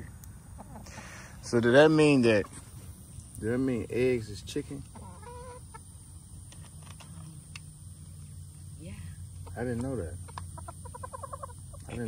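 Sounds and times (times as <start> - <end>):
hens clucking: 0.4 - 3.1, 4.5 - 7.4, 8.0 - 12.0.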